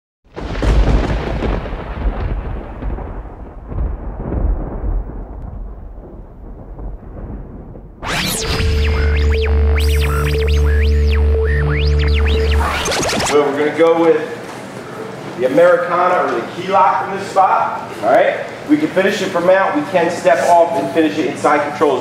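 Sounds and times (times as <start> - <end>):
thunder-like boom: 0.3 - 13.4
music with deep bass: 8.0 - 13.4.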